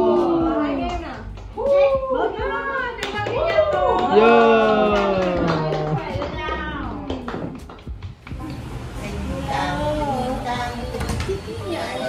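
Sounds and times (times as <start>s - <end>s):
hand clapping: 0.8s - 1.8s, 3.0s - 8.6s.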